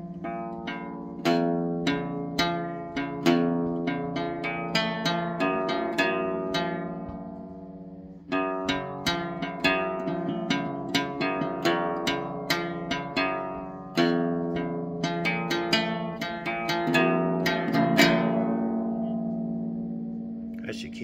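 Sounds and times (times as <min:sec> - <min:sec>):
classical guitar solo: 0:00.0 - 0:20.5.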